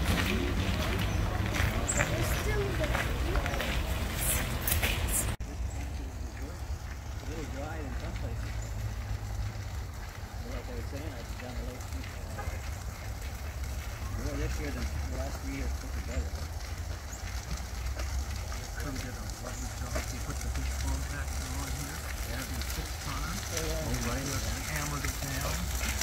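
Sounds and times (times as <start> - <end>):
distant indistinct voices: 0.0 - 26.0
footsteps crunching on gravel: 0.0 - 26.0.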